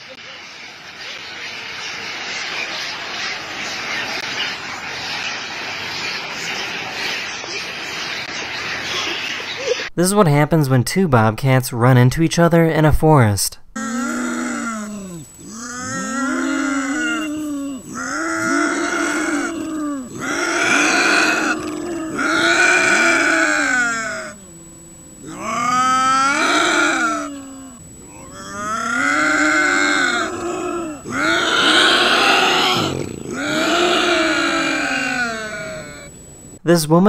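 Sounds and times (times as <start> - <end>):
bobcats yowling: 13.8 - 36.4.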